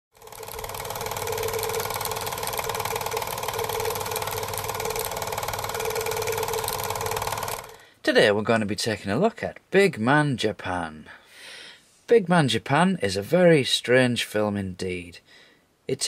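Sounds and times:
film projector clatter: 0.1 - 7.8
steady motor hum: 0.2 - 7.8.

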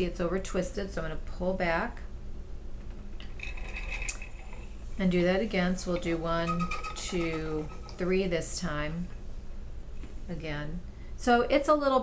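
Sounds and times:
spinning wheel rumbling: 2.9 - 9.1.

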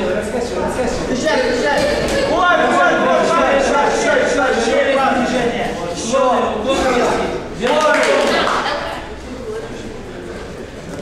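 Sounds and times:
men calling out and talking: 0.0 - 10.7.

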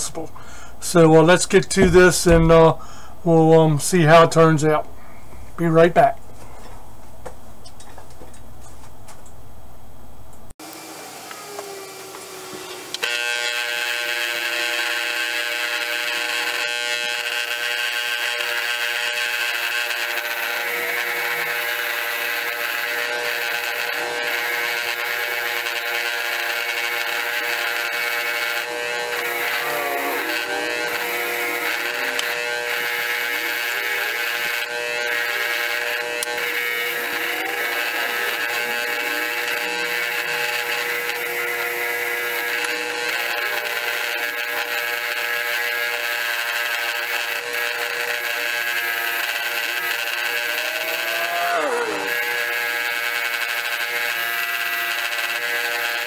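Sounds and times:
bench grinder wire wheel on metal: 12.1 - 56.0.

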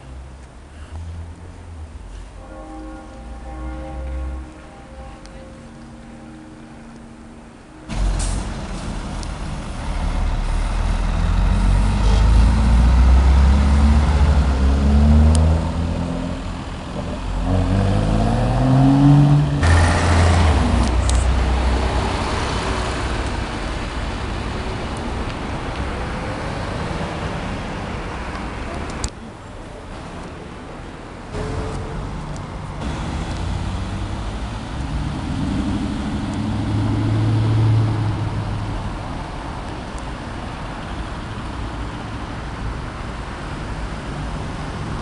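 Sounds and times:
city traffic noise: 0.0 - 45.0
engine accelerating through gears: 17.4 - 22.7.

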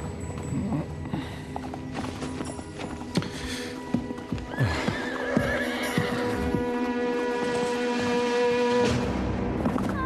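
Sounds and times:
film score music with held notes: 0.0 - 10.0
hoofbeats: 0.0 - 10.0
horse whinnying: 4.4 - 6.7.

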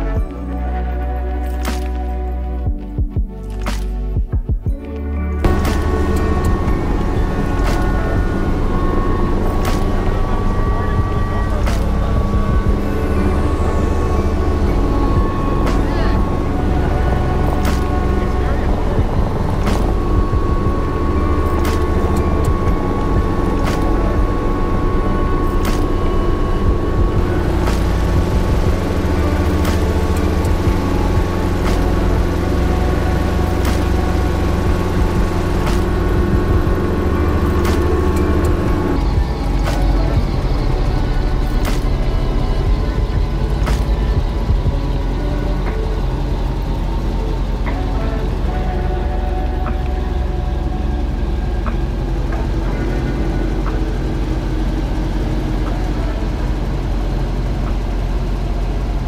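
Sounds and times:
high whine: 0.0 - 59.0
helicopter rotor and engine: 5.4 - 59.0.

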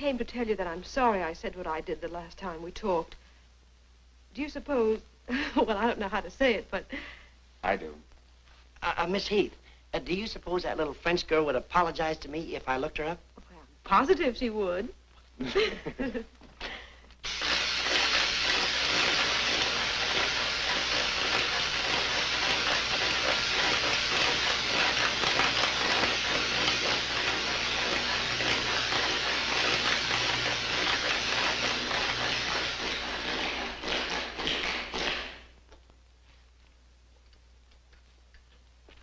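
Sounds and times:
electrical apparatus crackling: 17.2 - 39.0.

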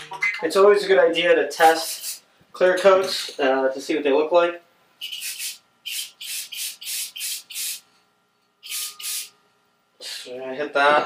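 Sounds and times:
aerosol spray hissing bursts: 1.7 - 2.2, 5.0 - 7.8, 8.6 - 9.3.

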